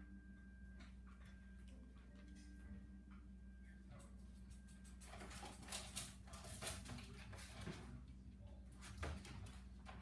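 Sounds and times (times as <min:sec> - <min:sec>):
low hum: 0:00.0 - 0:06.4.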